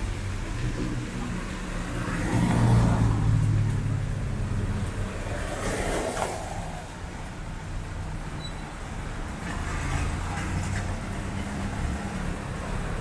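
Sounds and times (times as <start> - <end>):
vehicle passing on wet road: 0.0 - 13.0.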